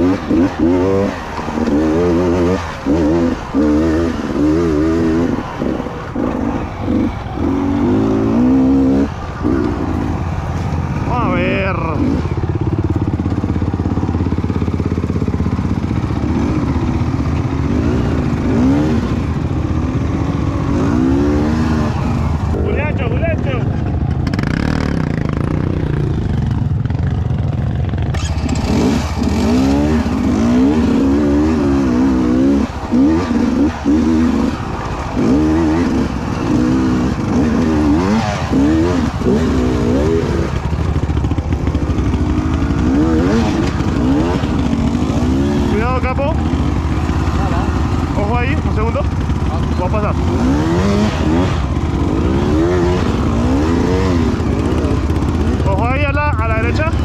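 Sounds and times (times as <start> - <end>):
two-stroke motorcycle engine revving: 0.0 - 57.0.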